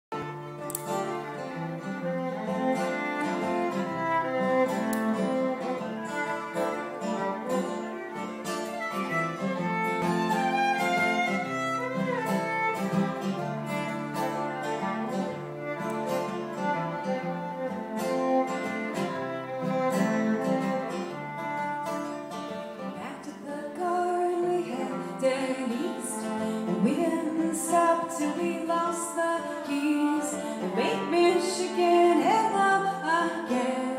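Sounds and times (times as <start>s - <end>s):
bowed fiddle melody: 0.1s - 23.2s, 24.0s - 33.9s
acoustic guitar accompaniment: 0.1s - 33.9s.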